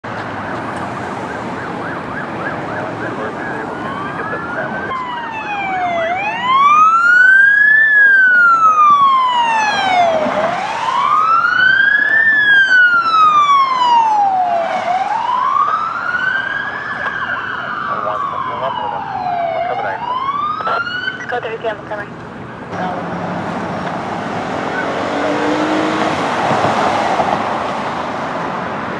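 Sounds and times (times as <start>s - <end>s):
road traffic noise: 0.0s - 28.9s
police siren wailing: 0.1s - 28.8s.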